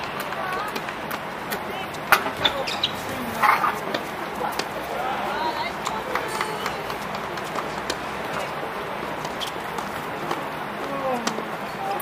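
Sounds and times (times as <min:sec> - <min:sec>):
footsteps: 0:00.0 - 0:11.7
faint voices: 0:00.0 - 0:12.0
tennis balls struck and bouncing: 0:00.0 - 0:12.0.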